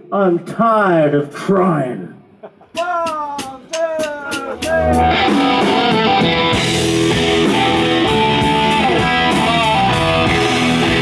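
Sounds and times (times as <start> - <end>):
drums: 2.4 - 11.0
ticking beat: 2.7 - 11.0
bending lead guitar notes: 4.4 - 11.0
electric guitar: 4.5 - 11.0
electric bass: 4.7 - 11.0.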